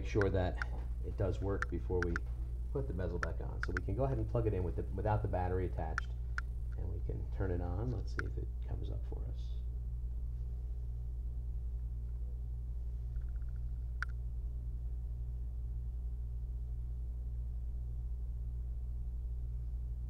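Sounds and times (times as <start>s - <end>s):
low electrical hum: 0.0s - 20.0s
sharp click: 1.5s - 2.3s, 3.2s - 3.9s
rapid faint ticks: 3.1s - 3.9s, 6.0s - 6.8s.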